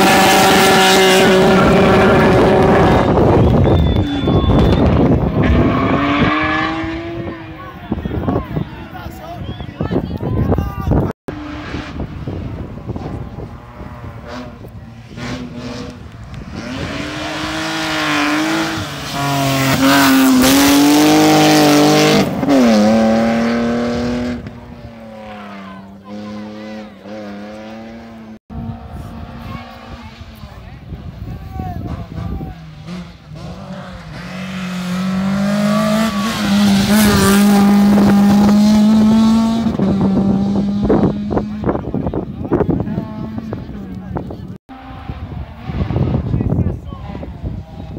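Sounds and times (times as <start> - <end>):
rally car engine revving: 0.0 - 7.6, 11.3 - 31.0, 31.8 - 47.9.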